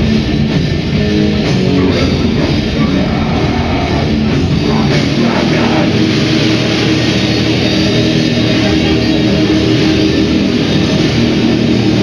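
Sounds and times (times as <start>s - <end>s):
heavy metal band playing: 0.0s - 12.0s.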